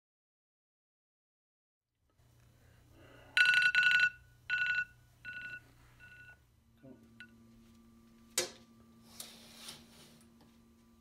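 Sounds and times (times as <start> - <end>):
alarm clock beeping: 3.3 - 6.4.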